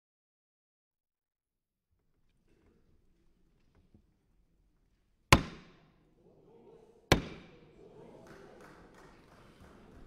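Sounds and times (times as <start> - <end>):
wooden gavel knocks with echo: 5.3 - 5.9, 7.1 - 7.5.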